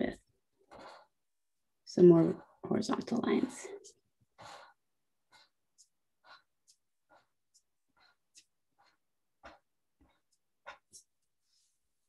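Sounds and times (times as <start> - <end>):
marker scratching on paper: 0.6 - 12.0.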